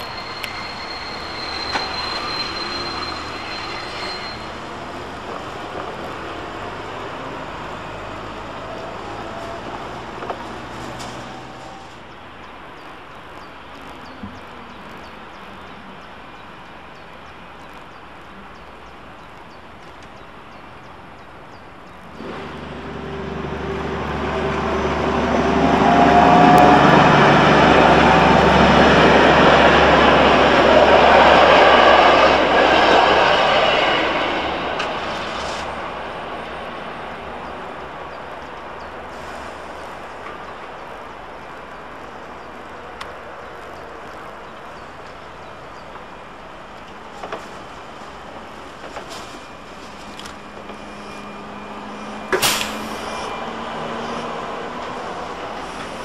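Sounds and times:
train passing: 0.0 - 12.3, 22.1 - 56.0.

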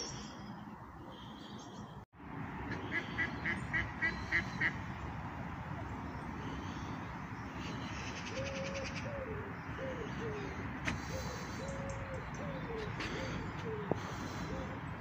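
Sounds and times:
outdoor background noise: 0.0 - 15.0
duck quacking: 2.7 - 4.8
bird cooing: 7.6 - 15.0.

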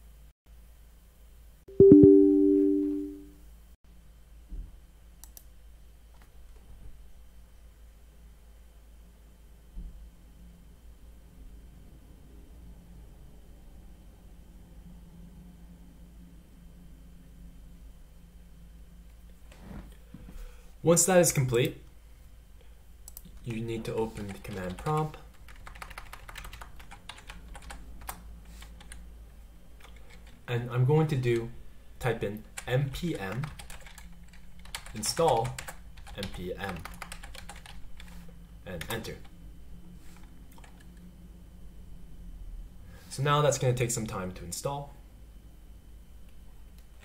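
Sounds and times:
faint low room hum: 0.0 - 47.0
computer mouse clicks: 5.2 - 5.5
keyboard typing clicks: 25.5 - 29.0.

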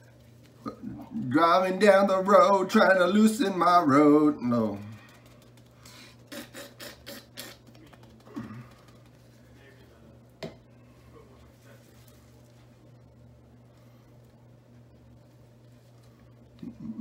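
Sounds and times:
low steady hum: 0.0 - 17.0
soft taps and rustles: 7.6 - 9.6.

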